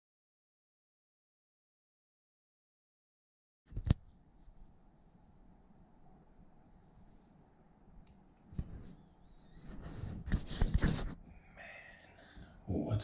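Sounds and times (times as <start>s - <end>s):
rustling handling noise on microphone: 3.7s - 4.8s, 8.4s - 11.3s
click: 8.0s - 8.2s.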